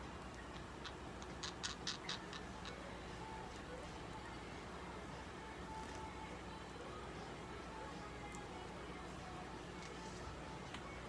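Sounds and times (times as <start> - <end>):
budgerigar beak cracking seeds: 0.4 - 2.8.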